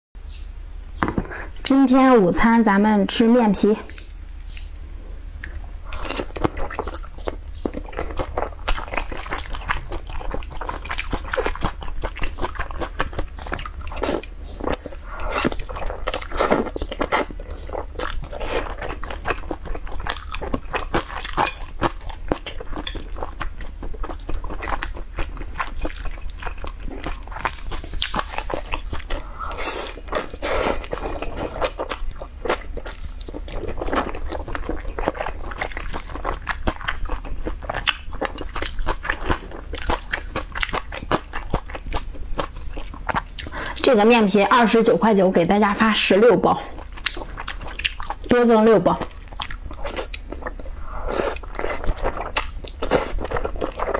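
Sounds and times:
chewing with mouth smacks: 3.8 - 43.9, 46.7 - 53.9.

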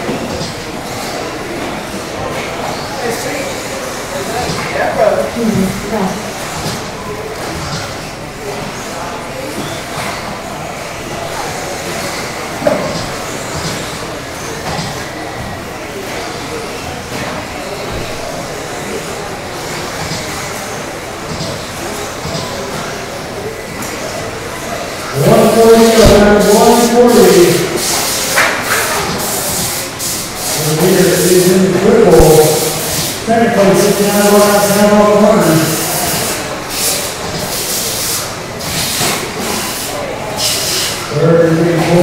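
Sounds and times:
man's voice over public address: 4.2 - 6.2, 25.1 - 27.9, 30.4 - 36.0, 41.0 - 42.0.

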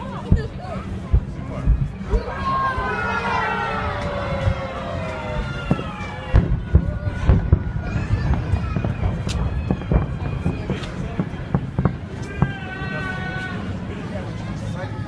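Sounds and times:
fireworks booming and cracking: 0.0 - 2.2, 4.0 - 13.6
crowd voices: 0.0 - 15.0.

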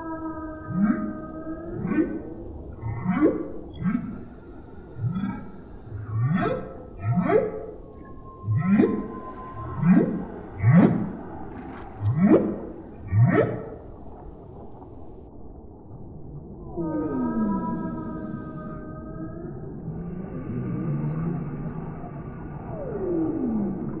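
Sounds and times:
whale whoops: 0.0 - 13.9, 16.7 - 24.0.

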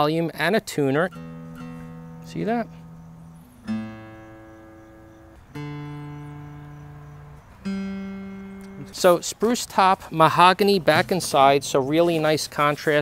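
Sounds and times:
acoustic guitar string plucked: 1.0 - 13.0.

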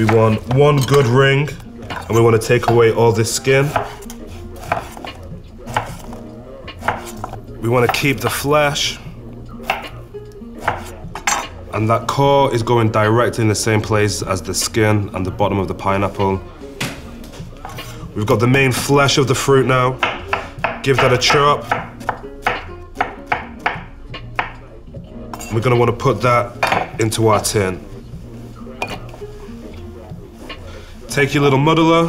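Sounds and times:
soft background music: 0.0 - 32.0
knife striking chopping board: 20.0 - 24.6.

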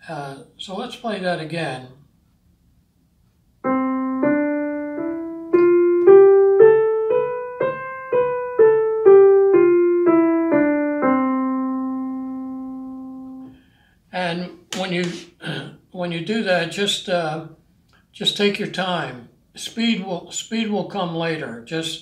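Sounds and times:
digital piano playing a scale: 3.6 - 13.6.

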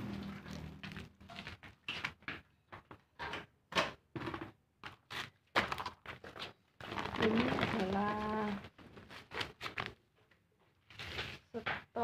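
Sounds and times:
soil rustling on plastic sacking: 6.8 - 9.6.

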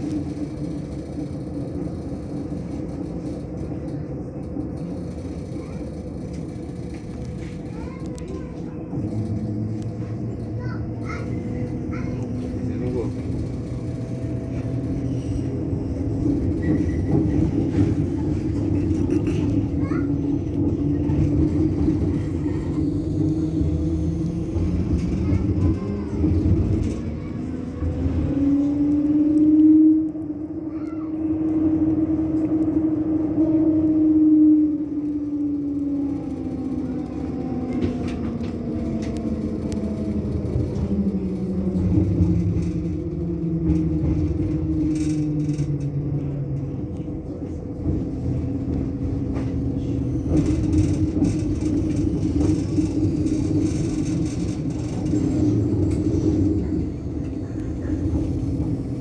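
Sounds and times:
road traffic passing: 0.0 - 59.0
tram equipment humming whine: 0.0 - 59.0.

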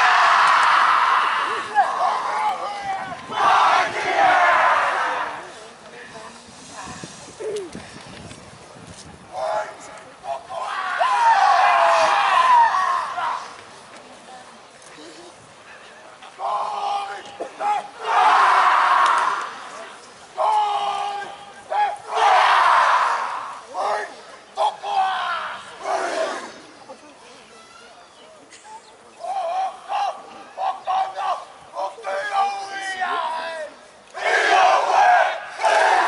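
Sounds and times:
faint voices: 0.0 - 36.0.

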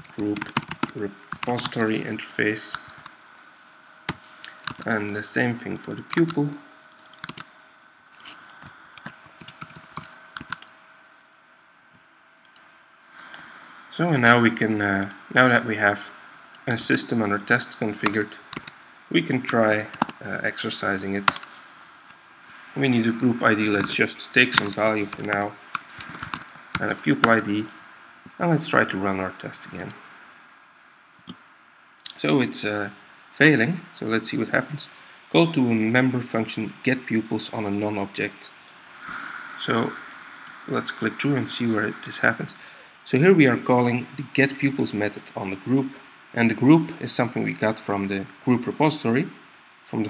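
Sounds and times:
computer keyboard typing: 0.0 - 2.0, 2.7 - 3.1, 4.1 - 7.6, 8.2 - 10.7, 13.2 - 13.5, 16.9 - 18.8, 19.7 - 20.2, 21.2 - 21.6, 23.7 - 27.4
room hiss: 0.0 - 50.0.

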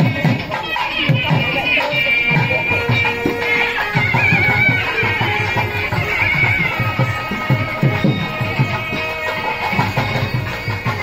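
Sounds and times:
drum strokes: 0.0 - 11.0
double-reed pipe melody: 0.6 - 11.0.

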